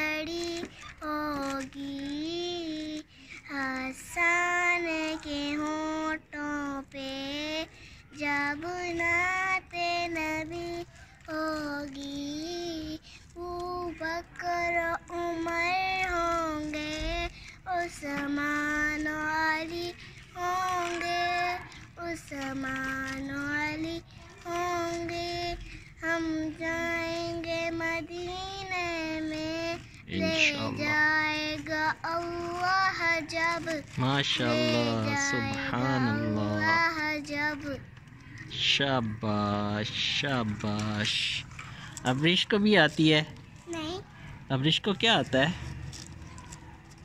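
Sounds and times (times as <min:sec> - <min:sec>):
girl singing unaccompanied: 0:00.0 - 0:38.6, 0:43.6 - 0:44.2
breaths: 0:03.1 - 0:03.5, 0:07.7 - 0:08.1, 0:13.0 - 0:13.4, 0:17.3 - 0:17.6, 0:20.0 - 0:20.3, 0:25.6 - 0:26.0, 0:41.5 - 0:42.1, 0:44.0 - 0:44.5.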